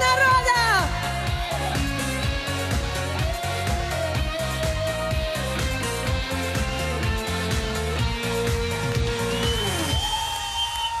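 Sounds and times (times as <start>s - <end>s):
bass rhythm: 0.0s - 10.0s
live pop band playing: 0.0s - 10.5s
crowd cheering: 8.3s - 11.0s.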